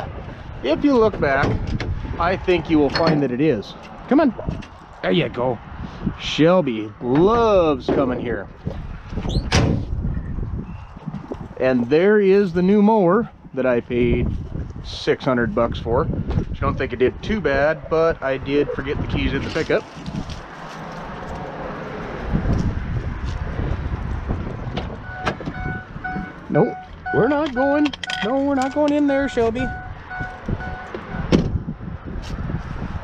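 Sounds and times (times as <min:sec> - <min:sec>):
tailgate squeak: 0:09.2 - 0:09.8
tailgate slamming shut: 0:09.3 - 0:09.9.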